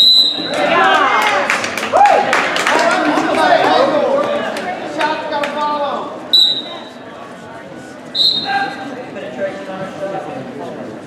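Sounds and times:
high-pitched whistle blasts: 0:00.0 - 0:00.6, 0:06.3 - 0:07.0, 0:08.1 - 0:08.7
crowd voices: 0:00.0 - 0:11.0.

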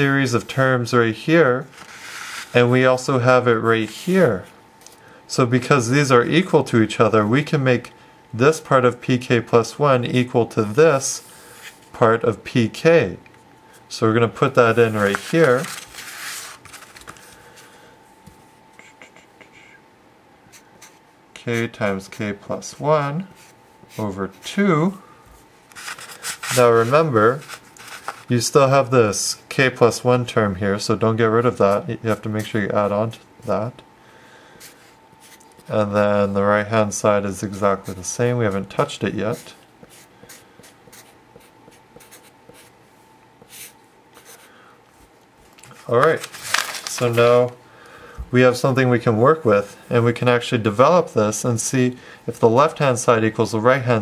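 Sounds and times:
marker brushing over paper: 0:01.7 - 0:02.6, 0:25.7 - 0:28.3, 0:34.6 - 0:35.7, 0:39.3 - 0:42.7, 0:43.4 - 0:45.1
marker scratching on paper: 0:20.5 - 0:21.0, 0:39.3 - 0:42.7, 0:43.4 - 0:44.5.

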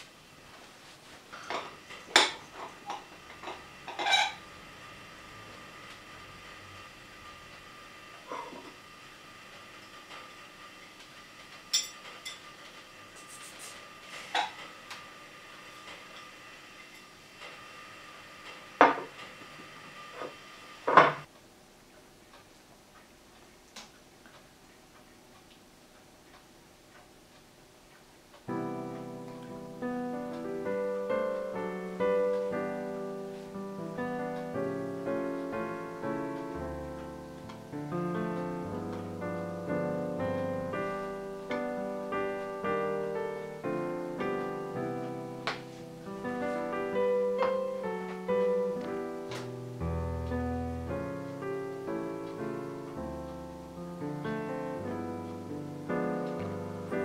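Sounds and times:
soft piano music: 0:28.4 - 0:57.0.

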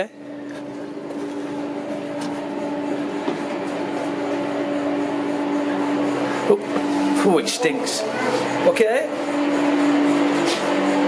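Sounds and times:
machine hum over hiss: 0:00.0 - 0:11.0.

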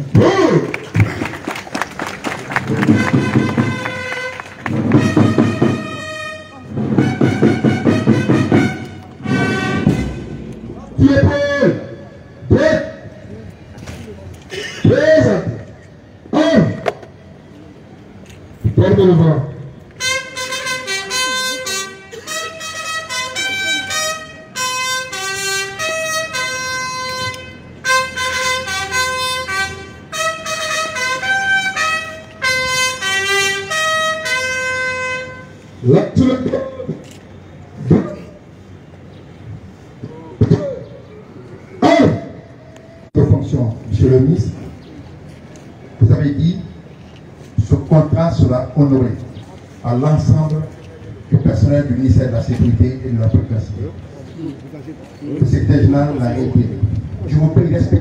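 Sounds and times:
crowd applauding: 0:00.7 - 0:05.2
brass band with drums: 0:02.4 - 0:13.2, 0:18.7 - 0:36.7.

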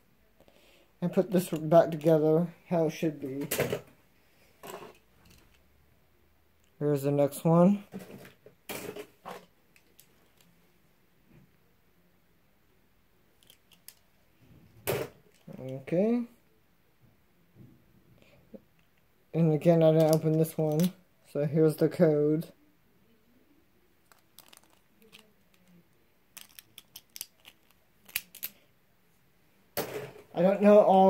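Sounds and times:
plastic spinning tops clicking: 0:26.4 - 0:28.5.

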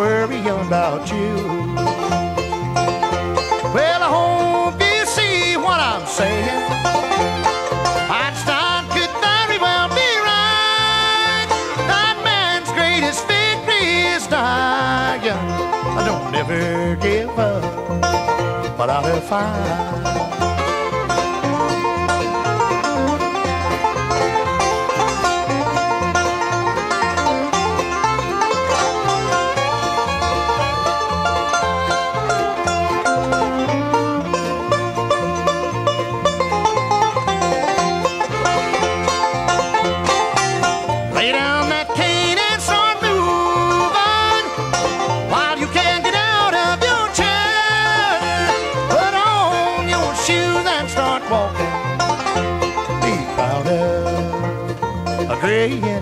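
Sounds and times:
banjo picking: 0:00.0 - 0:56.0
bass: 0:00.0 - 0:56.0
guitar: 0:00.0 - 0:56.0.

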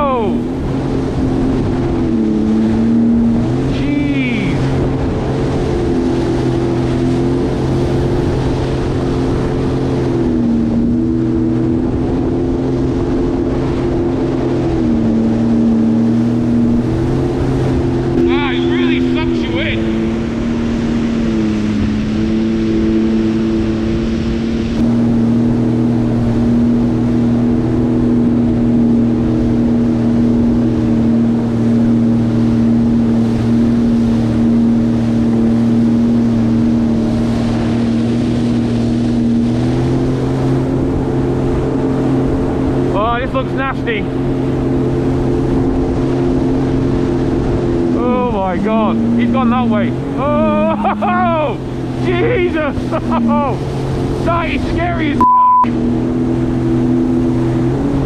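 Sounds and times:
personal watercraft engine: 0:00.0 - 0:58.0
rush of water and wind: 0:00.0 - 0:58.0.

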